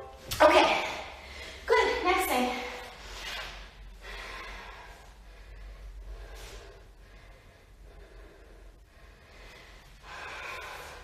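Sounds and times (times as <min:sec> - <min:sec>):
woman breathing: 0:01.0 - 0:01.8, 0:02.4 - 0:11.0.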